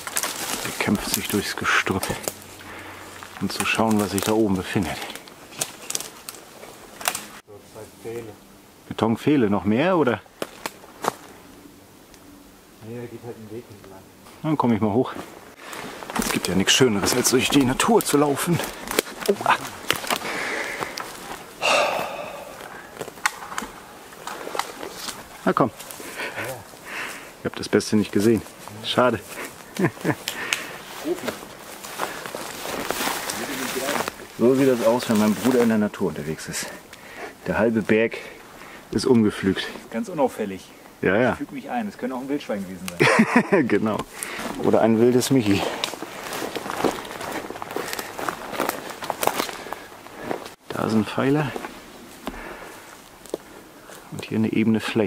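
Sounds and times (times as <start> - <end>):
twigs snapping underfoot: 0.0 - 7.4, 10.4 - 11.4, 15.6 - 27.2, 28.4 - 34.4, 44.0 - 44.7, 45.4 - 50.8, 51.6 - 54.3
footsteps through undergrowth: 0.0 - 8.2, 10.3 - 11.6, 14.2 - 37.1, 44.0 - 54.4.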